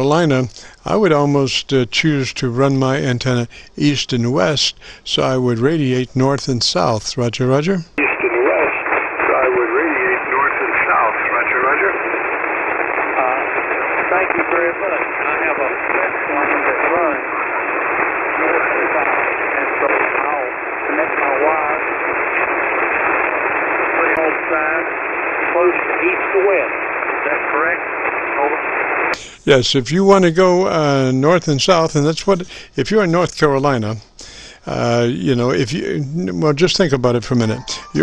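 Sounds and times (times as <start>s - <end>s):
man's voice over radio: 0.0s - 12.4s, 13.0s - 21.9s, 23.8s - 38.0s
radio static and band noise: 7.9s - 29.5s, 37.0s - 38.0s.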